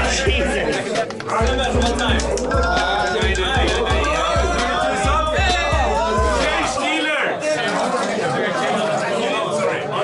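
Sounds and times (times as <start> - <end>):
background music with bass beat: 0.0 - 6.8
crowd chattering: 0.0 - 10.0.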